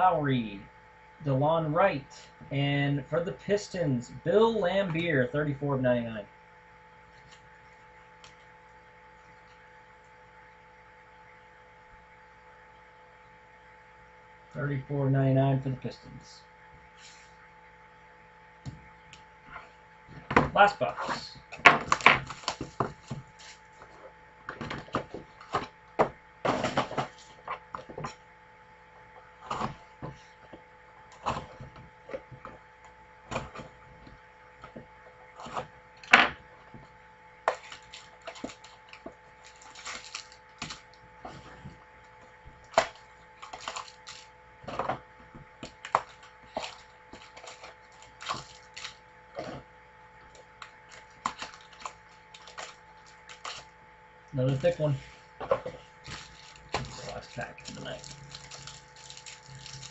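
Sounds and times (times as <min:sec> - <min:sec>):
faint steady hum: 0:00.0 - 0:59.9
card handling rustles: 0:21.6 - 0:25.8, 0:37.5 - 0:49.6, 0:50.2 - 0:53.7, 0:54.4 - 0:59.9
plastic wrappers crinkling and tearing: 0:21.8 - 0:23.8, 0:37.5 - 0:41.6, 0:42.6 - 0:44.8, 0:45.6 - 0:49.6, 0:50.3 - 0:53.7, 0:55.7 - 0:59.9.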